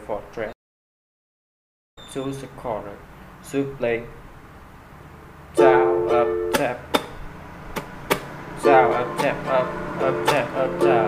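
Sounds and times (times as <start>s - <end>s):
ukulele strumming: 5.6s - 11.0s.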